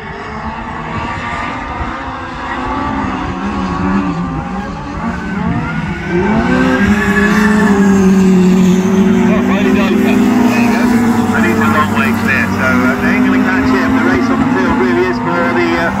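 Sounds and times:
racing car engines at high revs: 0.0 - 16.0.

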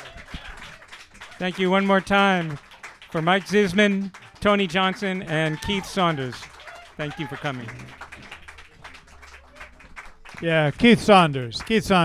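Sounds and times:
light applause: 0.0 - 12.0.

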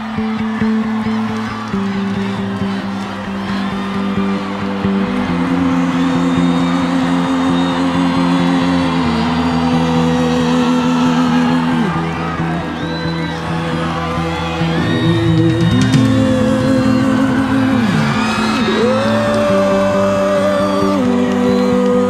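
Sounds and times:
crowd whistling and cheering: 0.0 - 22.0
live rock music with synth chords: 11.7 - 20.8.

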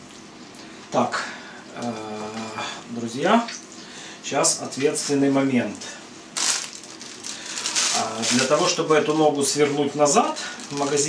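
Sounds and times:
plastic packaging crinkling: 6.3 - 11.0.

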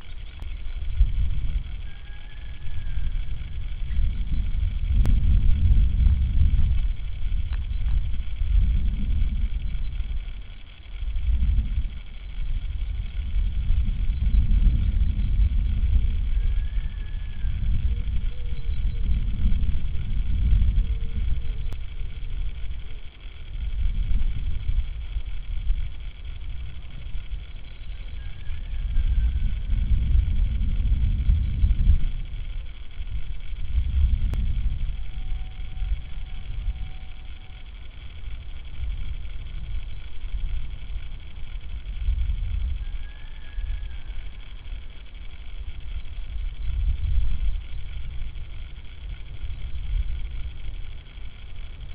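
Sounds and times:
wind buffeting microphone: 0.0 - 51.9
faint high bird call: 42.8 - 44.5.

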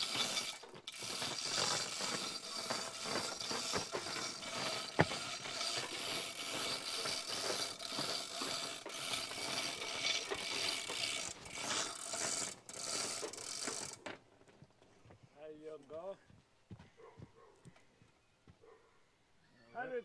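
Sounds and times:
chain hoist chain rattling: 0.0 - 14.1
hoist pawl clicking: 0.0 - 14.2.

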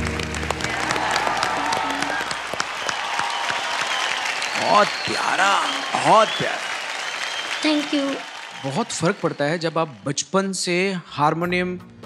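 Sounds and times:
audience applauding: 0.0 - 10.6.

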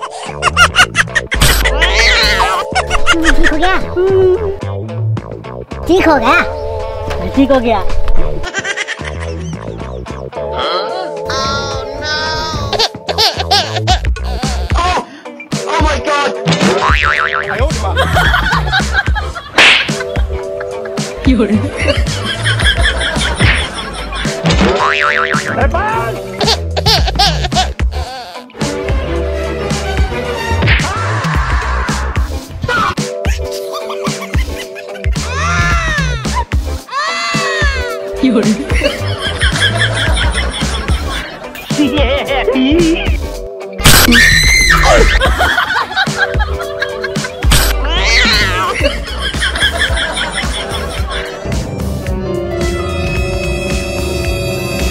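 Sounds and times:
background music: 0.0 - 54.9
cartoon sound effects: 1.3 - 4.6, 47.5 - 48.8
springy boing: 16.8 - 17.6, 24.6 - 25.6
man screaming: 47.8 - 48.8.

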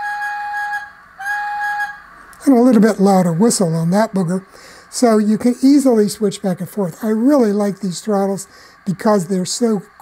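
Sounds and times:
steam whistle blasts: 0.0 - 2.3.

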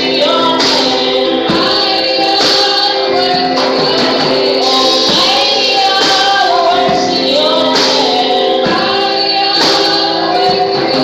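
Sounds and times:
women singing gospel song: 0.0 - 11.0.

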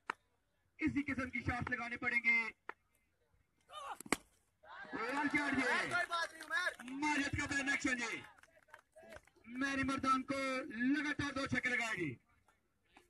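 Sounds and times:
cricket bat hitting ball: 4.0 - 4.3
men calling out: 4.6 - 6.2.

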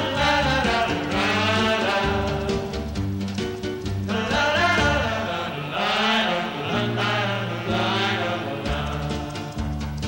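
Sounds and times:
choir singing harmonies: 0.0 - 3.2, 4.0 - 10.0
big-band backing: 0.0 - 10.0.

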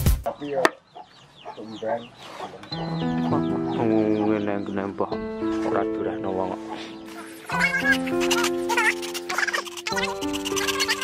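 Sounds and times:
chicken clucking: 0.3 - 4.6, 6.7 - 11.0
slow sustained music notes: 2.7 - 7.5
beat music: 6.6 - 11.0.

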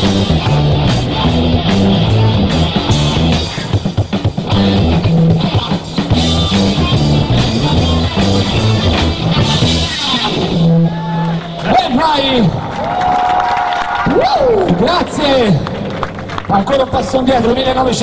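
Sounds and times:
rock band playing: 0.0 - 12.6.

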